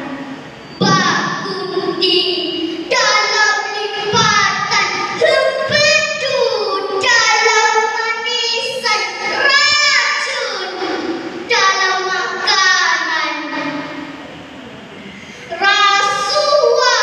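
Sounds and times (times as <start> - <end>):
girl chanting poem: 15.5 - 17.0.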